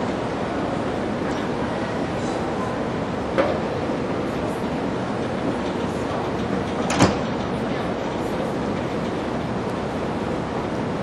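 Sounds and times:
monorail train rumbling: 0:00.0 - 0:11.0.

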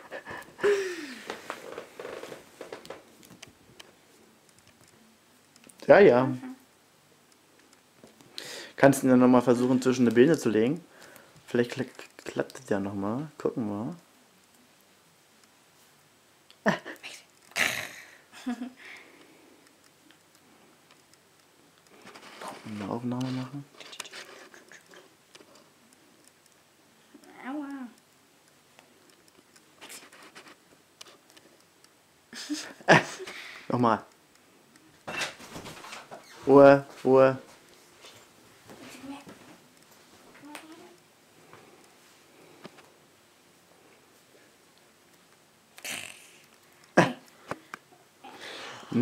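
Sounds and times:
person's breathy vocal sounds: 0:00.3 - 0:01.4.

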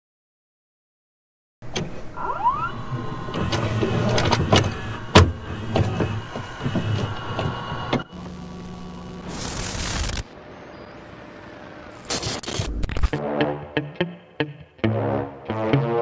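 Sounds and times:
low electrical hum: 0:01.7 - 0:12.1
rising whine: 0:02.1 - 0:13.2
motor whirring: 0:02.2 - 0:08.1.

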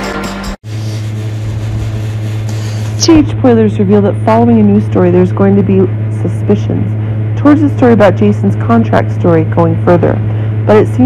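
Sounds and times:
steady low drone: 0:00.0 - 0:11.0
narration voice: 0:00.8 - 0:06.8.

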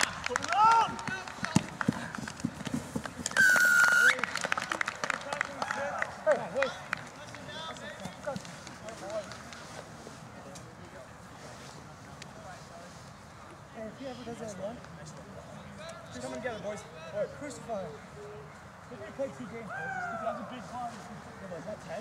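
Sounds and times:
running feet on grass: 0:00.4 - 0:03.8
referee's whistle blast: 0:03.4 - 0:04.2.

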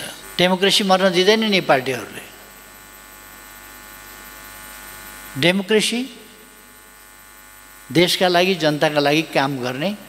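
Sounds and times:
electrical mains hum: 0:00.0 - 0:10.0
man's voice: 0:07.9 - 0:10.0.

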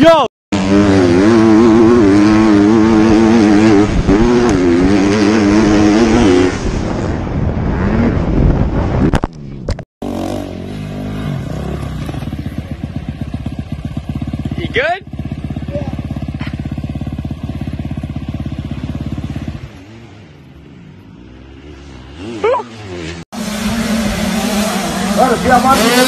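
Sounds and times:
dirt bike engine running hard: 0:00.5 - 0:08.2, 0:10.0 - 0:26.0
wind rushing past: 0:02.5 - 0:09.6.

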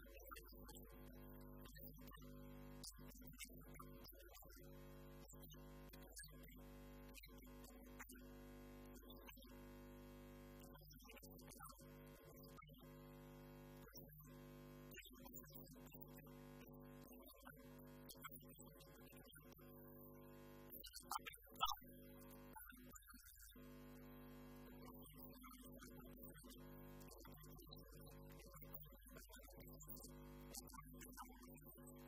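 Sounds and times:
faint steady hum: 0:00.0 - 0:32.0.

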